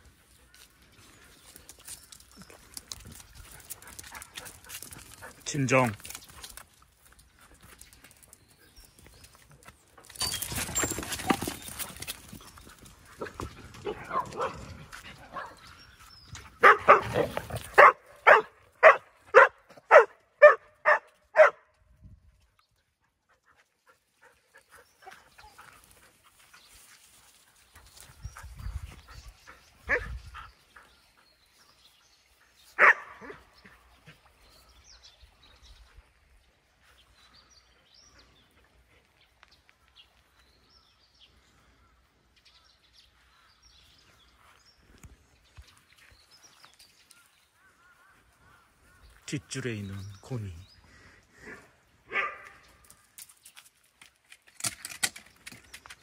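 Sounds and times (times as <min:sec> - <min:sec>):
dog barking: 0:13.8 - 0:14.7, 0:15.3 - 0:15.6, 0:16.6 - 0:21.7, 0:29.9 - 0:30.1, 0:32.8 - 0:33.4, 0:51.4 - 0:52.6.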